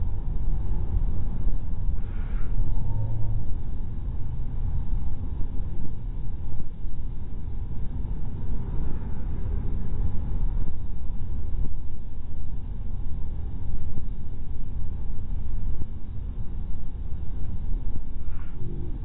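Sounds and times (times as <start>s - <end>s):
car engine and road noise: 0.0s - 19.0s.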